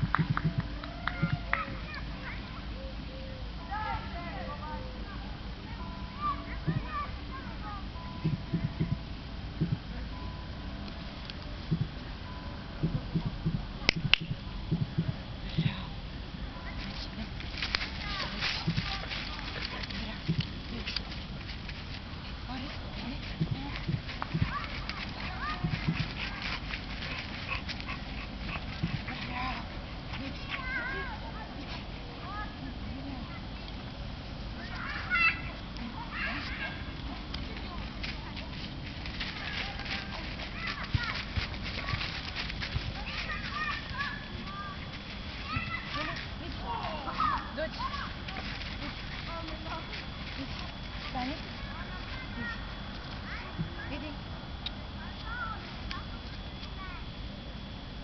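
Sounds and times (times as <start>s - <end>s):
faint low thuds: 0.0s - 1.9s, 6.6s - 7.0s, 8.0s - 10.4s, 11.6s - 16.6s, 17.4s - 30.1s, 37.5s - 54.9s
sharp finger snap clicks: 13.9s - 14.4s.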